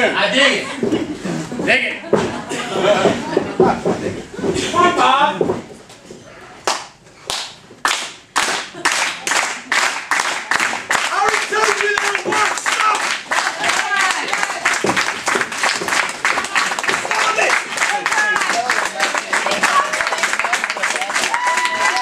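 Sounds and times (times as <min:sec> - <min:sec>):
audience clapping rhythmically: 0:06.6 - 0:22.0.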